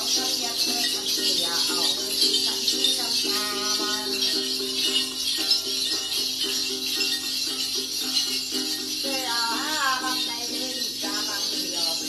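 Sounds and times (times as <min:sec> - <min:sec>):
person singing: 0:00.0 - 0:04.9, 0:09.0 - 0:12.0
jingle bells shaken: 0:00.0 - 0:12.0
plucked lute notes: 0:00.0 - 0:12.0.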